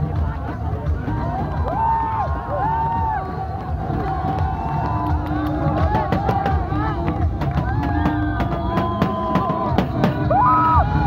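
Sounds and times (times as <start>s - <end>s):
music playing: 0.0s - 11.0s
audience cheering and shouting: 1.2s - 11.0s.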